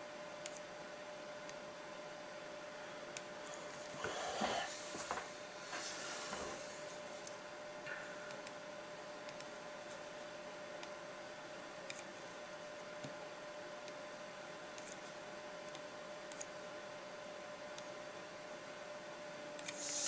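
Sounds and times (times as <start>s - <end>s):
faint hum: 0.0s - 20.0s
steady hiss: 19.6s - 20.0s.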